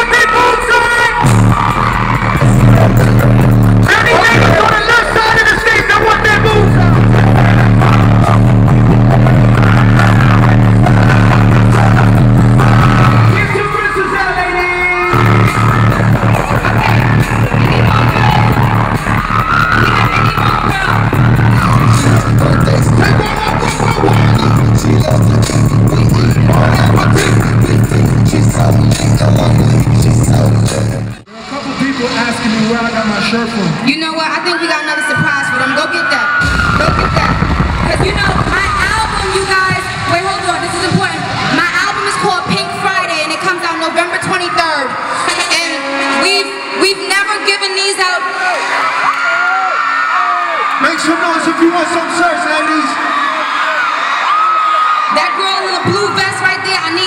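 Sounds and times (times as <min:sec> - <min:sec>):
person rapping: 0:00.0 - 0:31.2, 0:36.7 - 0:48.2, 0:55.2 - 0:57.0
bass-driven hip-hop beat: 0:00.0 - 0:33.8, 0:36.4 - 0:44.5
crowd noise: 0:00.0 - 0:57.0.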